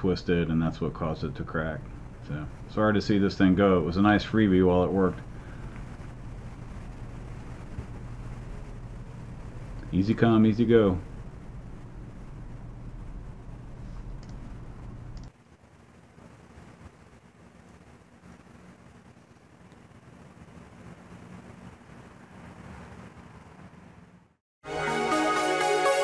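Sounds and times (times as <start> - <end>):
faint low rumble: 0.0 - 24.4.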